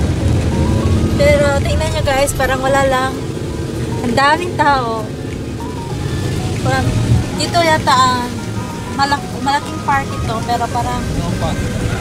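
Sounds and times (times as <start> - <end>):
van engine rumble: 0.0 - 12.0.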